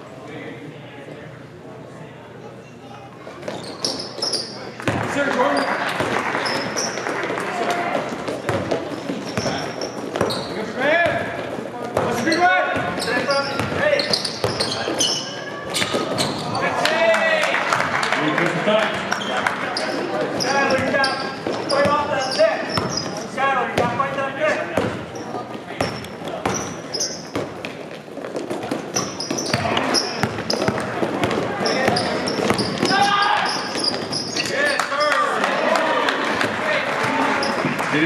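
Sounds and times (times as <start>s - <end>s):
sneakers squeaking: 2.5s - 16.8s, 18.9s - 35.4s, 36.4s - 37.8s
basketball bouncing on court: 3.5s - 5.2s, 8.3s - 15.1s, 19.9s - 23.1s, 24.7s - 25.2s, 25.8s - 34.5s.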